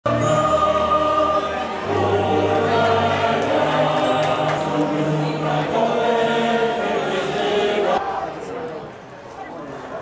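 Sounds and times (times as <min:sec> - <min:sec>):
choir singing sustained notes: 0:00.1 - 0:08.0.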